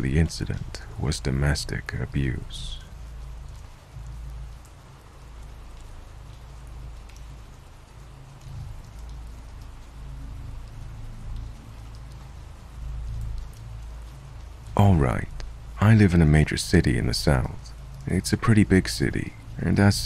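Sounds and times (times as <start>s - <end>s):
steady rain falling: 0.0s - 20.0s.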